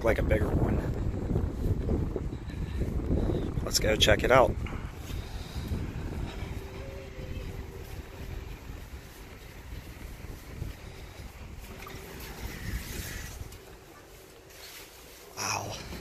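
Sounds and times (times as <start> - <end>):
wind rumbling on microphone: 0.0 - 16.0.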